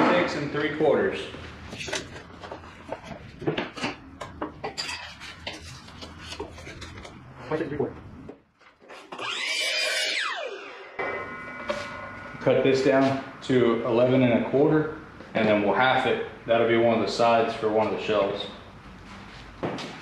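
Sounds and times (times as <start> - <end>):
whir with shifting pitch: 9.1 - 15.0.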